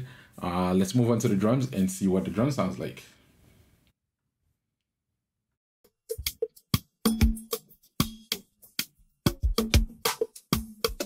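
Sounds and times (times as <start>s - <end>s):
drum groove: 6.1s - 11.0s.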